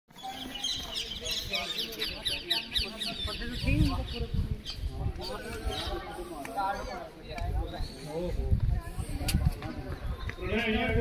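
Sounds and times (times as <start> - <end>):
birds chirping: 0.1 - 8.4
people's voices: 0.1 - 11.0.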